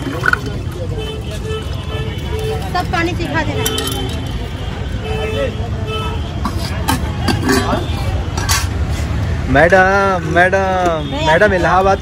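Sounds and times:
street traffic rumble: 0.0s - 12.0s
voices of passers-by: 0.0s - 12.0s.

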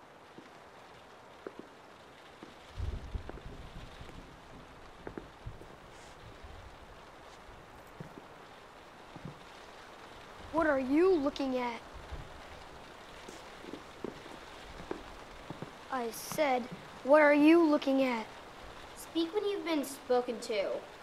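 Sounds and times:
rain on a window: 0.0s - 21.0s.

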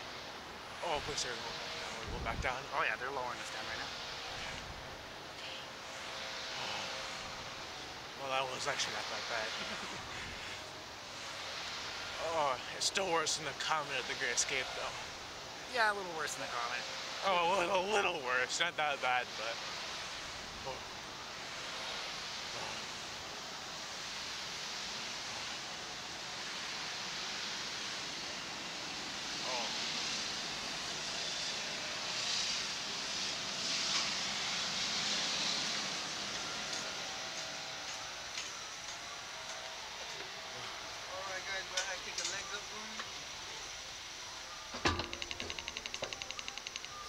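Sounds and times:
wind rushing on microphone: 2.0s - 2.6s
fast ratcheting clicks: 44.9s - 47.0s.

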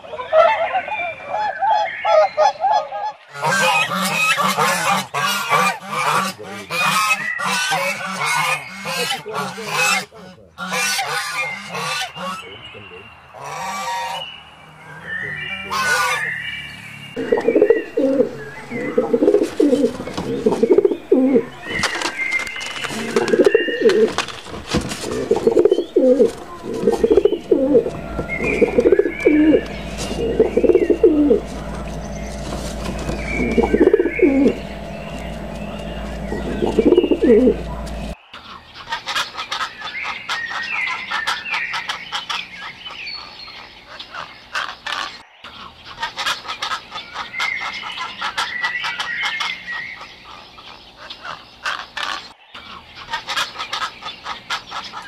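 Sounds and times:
geese honking: 0.1s - 55.0s
pigeons cooing: 0.4s - 12.6s, 15.0s - 16.4s, 17.2s - 38.2s.

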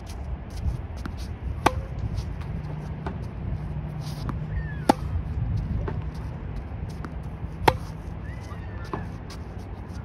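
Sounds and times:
tennis racquet hitting ball: 1.0s - 3.3s, 4.0s - 6.2s, 6.9s - 8.1s.

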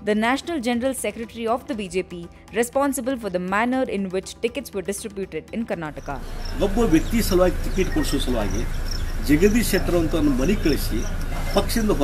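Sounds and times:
insects chirping: 5.9s - 12.0s
man speaking: 6.6s - 12.0s.

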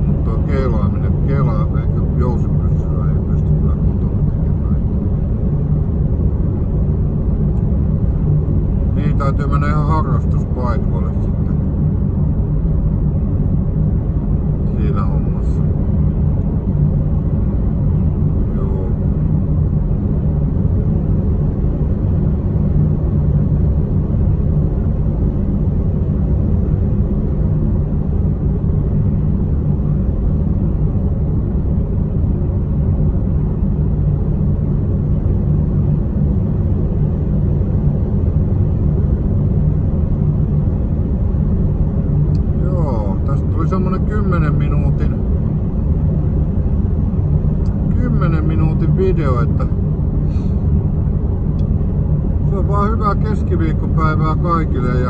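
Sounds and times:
man's voice: 0.0s - 4.7s, 9.0s - 11.5s, 47.9s - 49.8s, 52.5s - 55.0s
car engine and road noise: 0.0s - 55.0s.

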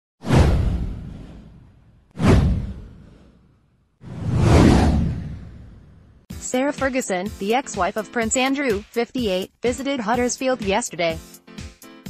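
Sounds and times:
whoosh: 0.2s - 6.3s
deep low rumble: 0.4s - 3.4s, 4.1s - 6.2s.

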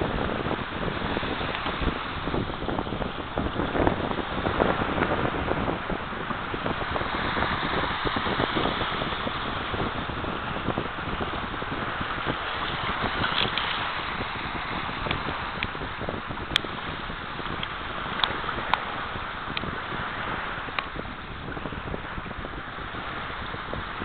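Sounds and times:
small waves washing on shore: 0.0s - 24.0s
wind buffeting microphone: 0.0s - 24.0s.

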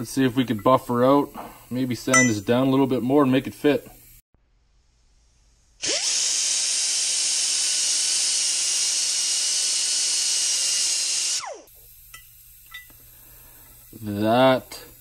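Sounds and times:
die grinder high-pitched whine: 5.8s - 11.8s.

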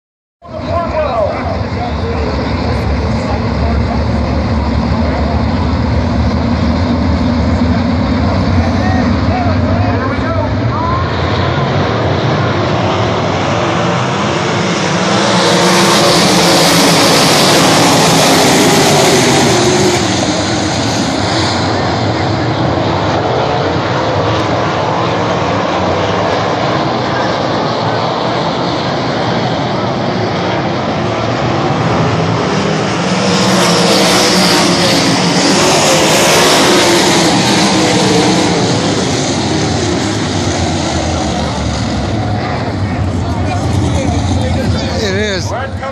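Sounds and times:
racing car engines droning: 0.4s - 45.9s.

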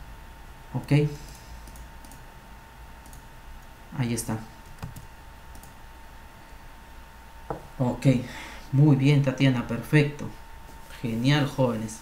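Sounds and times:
background hiss: 0.0s - 12.0s
computer clicks: 1.2s - 2.2s, 3.0s - 3.7s, 4.6s - 5.8s.

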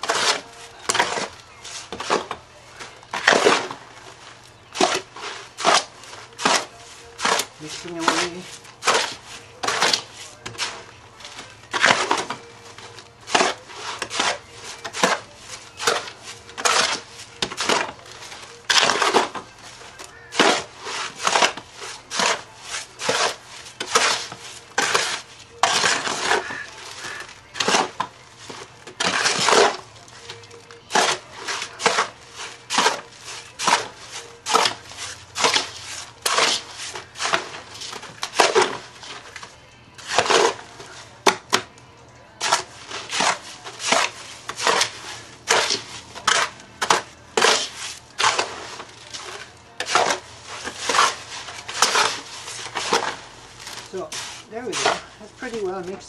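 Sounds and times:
spade chopping and scraping clay: 0.0s - 41.8s, 42.4s - 56.0s.

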